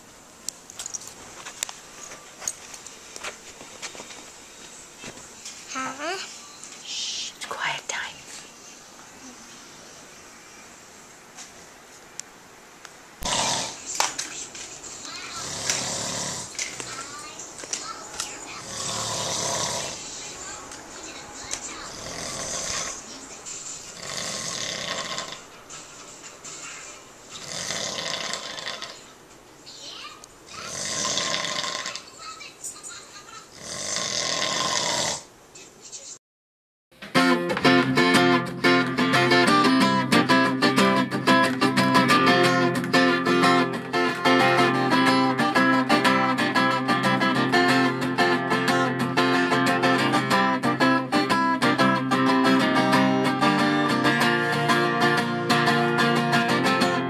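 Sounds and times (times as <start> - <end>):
child whispering: 5.7 - 9.7, 19.9 - 24.0
man snoring: 13.2 - 13.8, 15.4 - 16.6, 18.6 - 20.0, 21.9 - 23.0, 24.0 - 25.5, 27.4 - 29.0, 30.6 - 32.0, 33.6 - 35.3.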